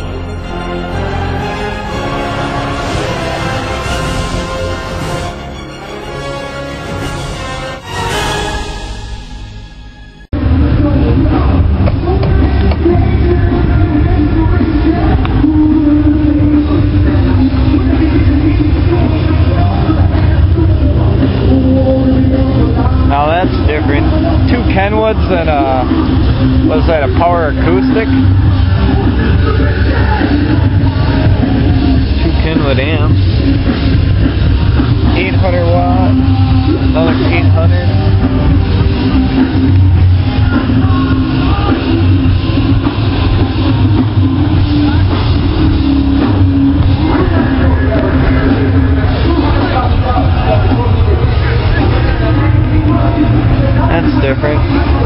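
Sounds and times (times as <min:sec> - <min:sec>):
car stereo playing heavy bass music: 0:09.2 - 0:55.0.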